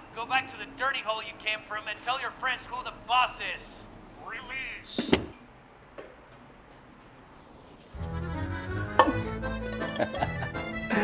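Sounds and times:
background music: 8.0 - 11.0.

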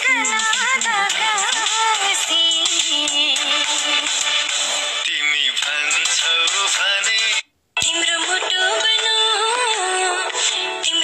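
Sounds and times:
person singing: 0.0 - 4.2
backing music: 0.0 - 8.4.

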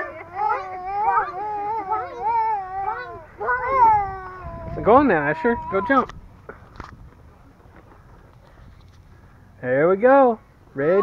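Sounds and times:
young child vocalizing: 0.0 - 6.1.

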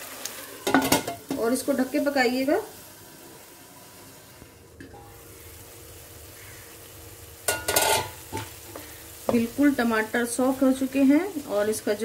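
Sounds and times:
pan sizzling softly: 0.0 - 12.0.

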